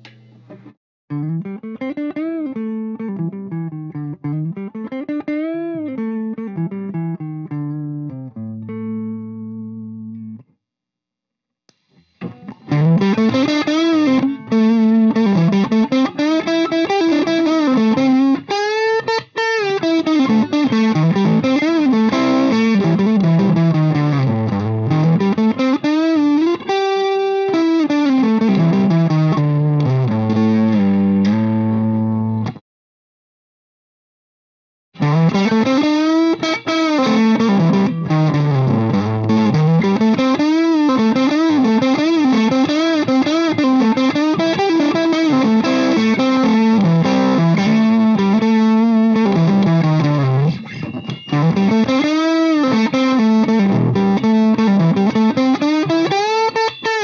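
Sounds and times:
electric guitar lead with string bends: 0.0 - 10.4, 12.1 - 32.6, 35.0 - 57.0.

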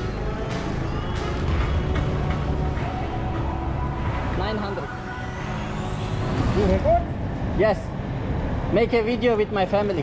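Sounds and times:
fuel pump whine: 0.0 - 8.7.

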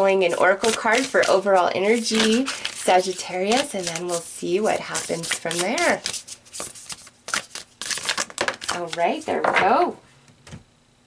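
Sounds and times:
cards being shuffled: 0.5 - 9.2.

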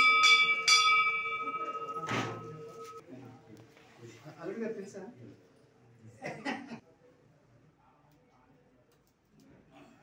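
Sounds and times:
temple bell ringing: 0.0 - 3.0.

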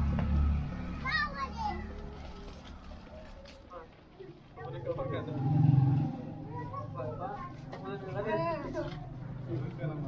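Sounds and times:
children playing: 0.5 - 9.9.

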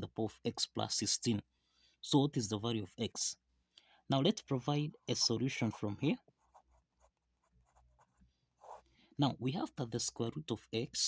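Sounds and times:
ballpoint pen scratching on paper: 5.7 - 8.8.

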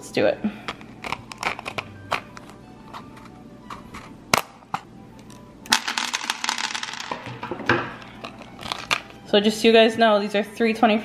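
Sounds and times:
cardboard crinkling and tearing: 0.8 - 3.9, 8.3 - 8.9.

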